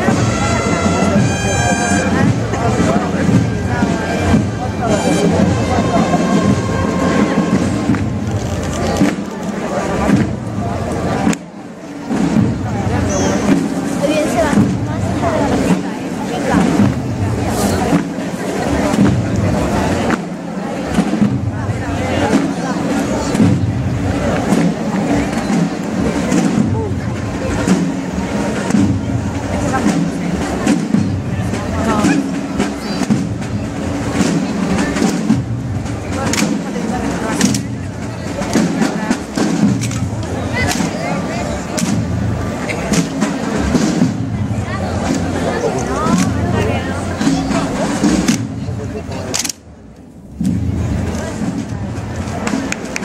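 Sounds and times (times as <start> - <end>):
murmur of crowd chatter: 0.0 - 53.0
rifles clacking: 49.3 - 49.6.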